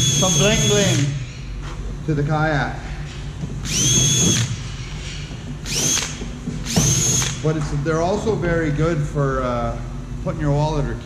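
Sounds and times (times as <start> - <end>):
cordless drill drilling plastic: 0.0 - 1.1, 3.6 - 4.5, 5.6 - 7.4.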